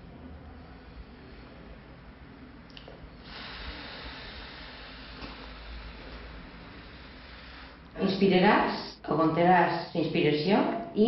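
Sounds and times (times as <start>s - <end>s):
person exhaling slowly: 3.2s - 7.8s.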